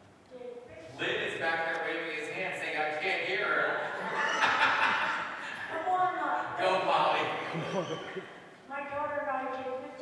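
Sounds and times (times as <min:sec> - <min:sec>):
light laughter: 0:03.9 - 0:05.7, 0:07.4 - 0:08.4.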